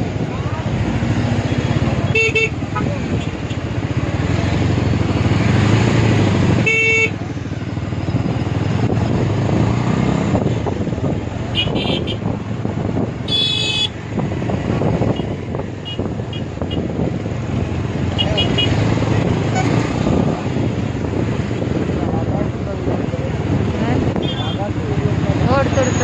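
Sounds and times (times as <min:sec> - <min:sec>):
two-wheeler engine and road noise: 0:00.0 - 0:26.0
vehicle horn toots: 0:02.1 - 0:03.2, 0:06.6 - 0:07.2, 0:11.5 - 0:12.2, 0:13.3 - 0:14.0, 0:24.2 - 0:24.6.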